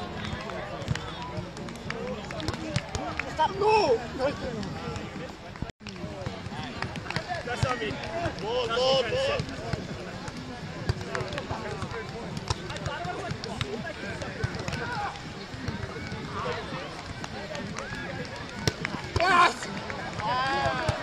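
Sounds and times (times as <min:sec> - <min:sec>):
people talking and calling: 0:00.0 - 0:21.0.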